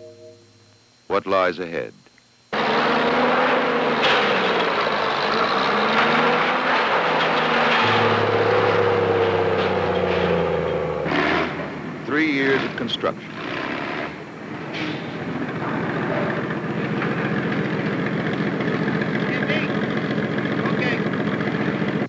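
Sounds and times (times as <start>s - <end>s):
deep hum: 2.5s - 21.9s
heavy machinery engines running: 2.5s - 22.0s.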